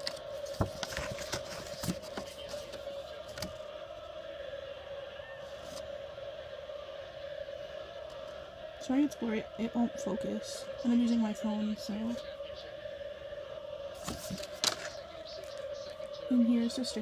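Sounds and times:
paper card clicks and rustles: 0:00.0 - 0:03.6, 0:14.0 - 0:15.8
steady background hum: 0:00.0 - 0:17.0.

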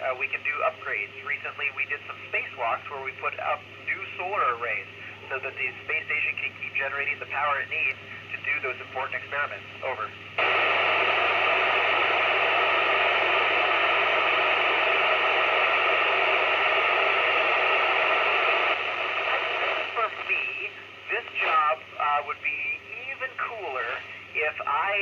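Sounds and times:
broken radio voice: 0:00.0 - 0:25.0
radio static hiss: 0:00.0 - 0:25.0.

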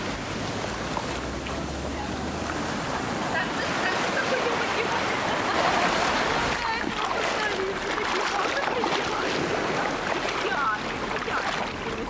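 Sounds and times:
small waves breaking on beach: 0:00.0 - 0:12.0.

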